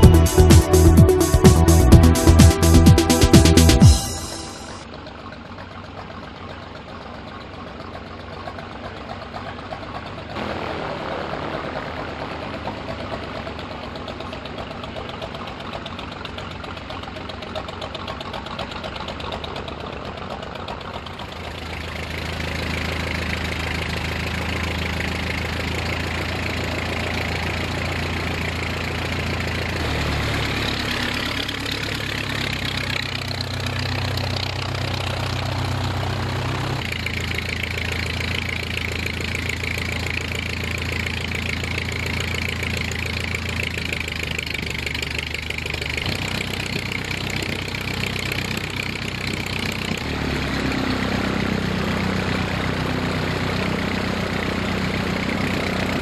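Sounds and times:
propeller aircraft engine idling: 0:00.0 - 0:56.0.

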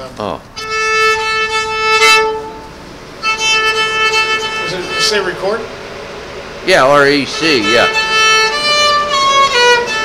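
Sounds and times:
violin bowed notes: 0:00.6 - 0:05.6, 0:07.2 - 0:10.0.

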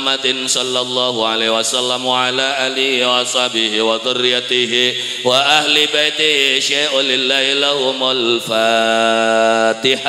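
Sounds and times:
man chanting into a microphone: 0:00.0 - 0:10.0.

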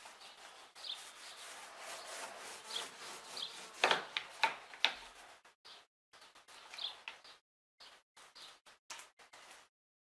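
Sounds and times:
paint roller rubbing on wood: 0:00.0 - 0:05.5.

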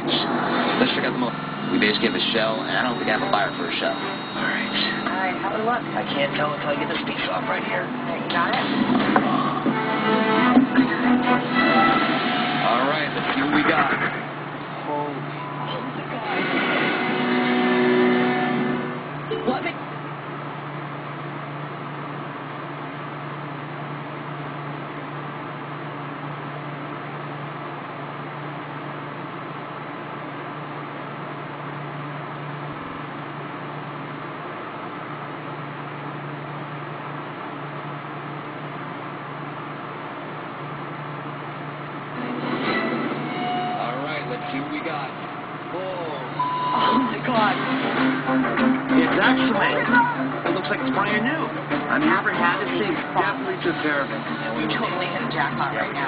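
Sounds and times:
low hum: 0:00.0 - 0:56.0.

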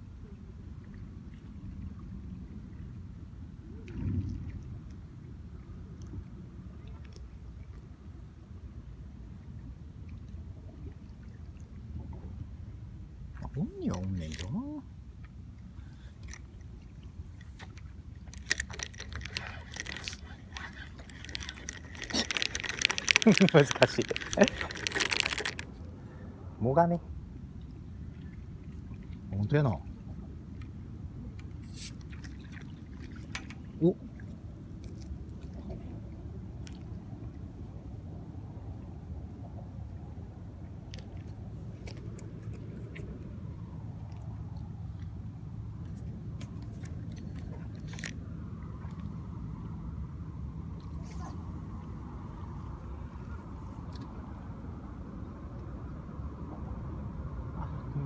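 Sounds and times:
steady low rumble: 0:00.0 - 0:58.0
fishing reel clicks and rattles: 0:21.0 - 0:25.7.

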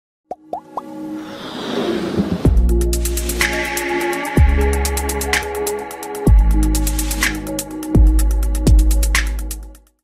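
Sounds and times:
rising electronic plops: 0:00.3 - 0:01.0.

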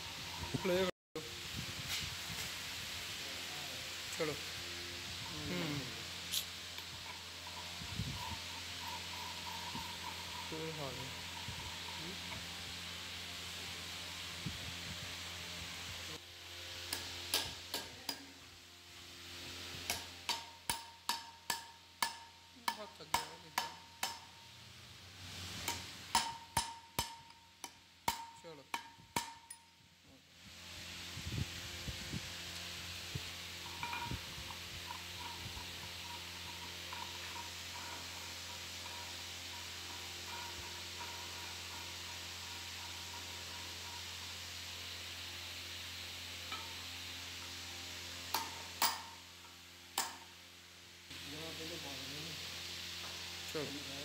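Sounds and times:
steady hiss: 0:00.0 - 0:54.0
steel tool striking metal pulley: 0:16.9 - 0:18.3, 0:19.8 - 0:24.4, 0:25.6 - 0:29.7, 0:33.6 - 0:44.2, 0:46.5 - 0:46.8, 0:48.3 - 0:49.3, 0:50.0 - 0:50.3.

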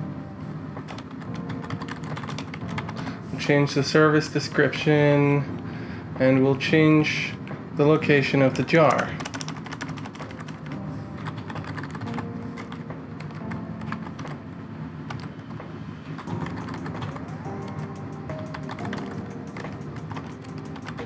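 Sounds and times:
background music with held tones: 0:00.0 - 0:21.0
computer keyboard typing: 0:00.8 - 0:03.0, 0:08.8 - 0:14.4, 0:15.1 - 0:15.5, 0:16.2 - 0:21.0.

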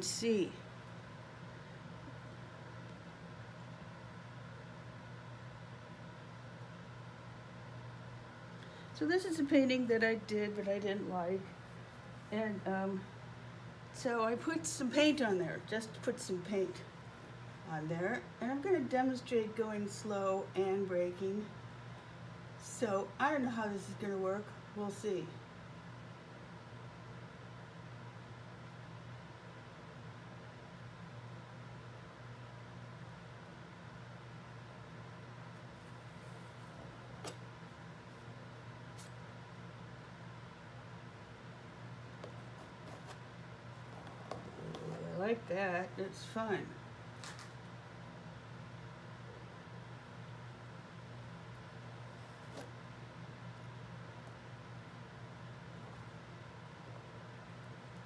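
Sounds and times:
room hum and hiss: 0:00.0 - 0:58.0.

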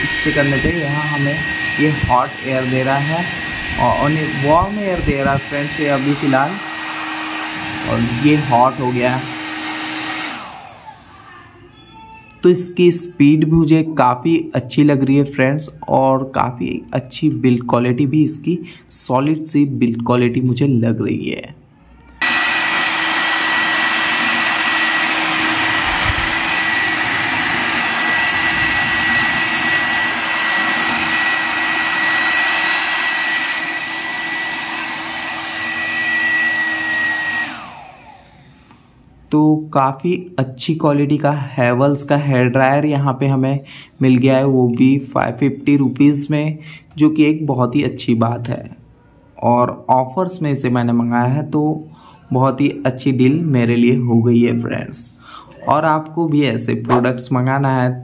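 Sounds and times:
hair dryer blowing: 0:00.0 - 0:11.5, 0:22.2 - 0:39.1, 0:56.9 - 0:57.1.

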